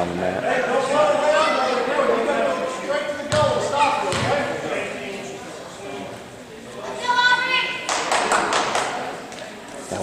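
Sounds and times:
crowd clapping and cheering: 0:07.8 - 0:09.1.

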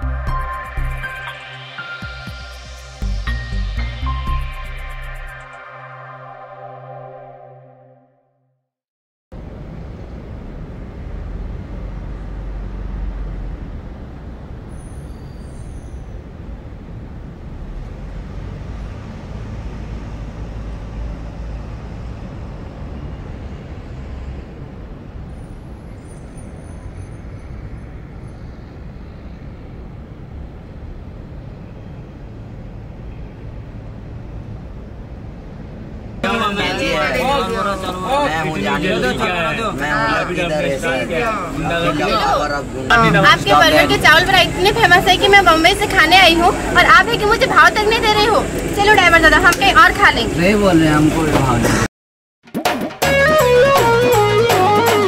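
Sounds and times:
street traffic noise: 0:00.0 - 0:07.2, 0:09.3 - 0:51.9, 0:53.0 - 0:55.0.

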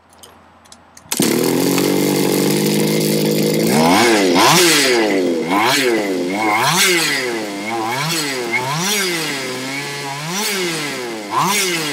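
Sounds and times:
small two-stroke engine revving: 0:01.1 - 0:11.9.

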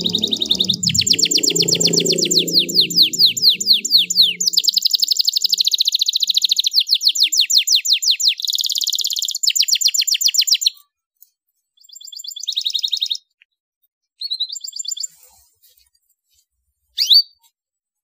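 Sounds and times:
canary singing trills: 0:00.0 - 0:09.9.

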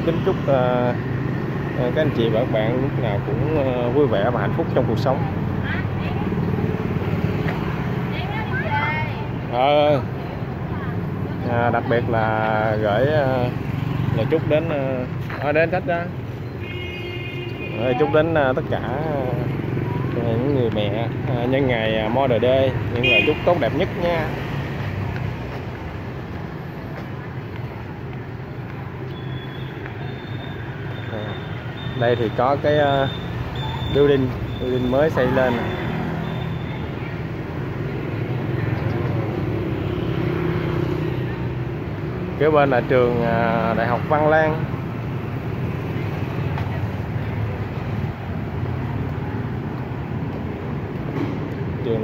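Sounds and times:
city street traffic rumble: 0:00.0 - 0:52.0
motorbike and car engines passing: 0:00.0 - 0:52.0.

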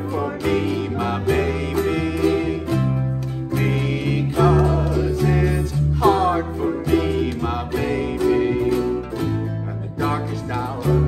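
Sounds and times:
low bass line: 0:00.0 - 0:11.0
ukuleles strumming chords: 0:00.0 - 0:11.0.

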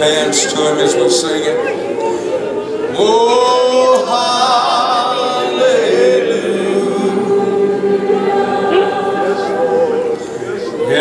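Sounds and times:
congregation singing a worship song: 0:02.9 - 0:11.0.

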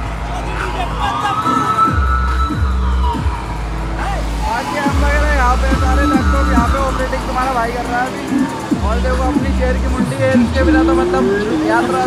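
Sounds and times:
heavy bass beat: 0:00.0 - 0:12.0
sung melody: 0:00.0 - 0:12.0.

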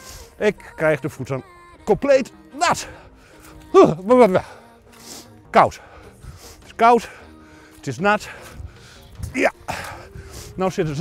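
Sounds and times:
quiet background music: 0:00.0 - 0:11.0
man's wordless exclamation: 0:00.4 - 0:02.9, 0:03.6 - 0:04.6.

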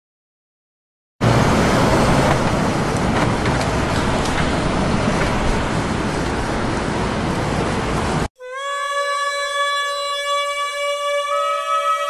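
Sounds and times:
road traffic noise: 0:01.2 - 0:08.3.

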